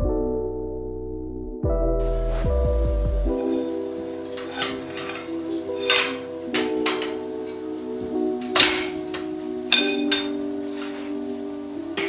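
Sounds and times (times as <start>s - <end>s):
background music: 0.0s - 12.0s
steel tube clinking: 3.4s - 7.8s, 8.4s - 11.0s.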